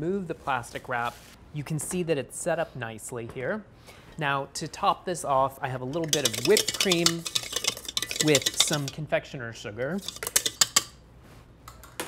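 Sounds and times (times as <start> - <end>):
utensil scraping metal bowl: 5.8 - 9.0, 9.8 - 11.0.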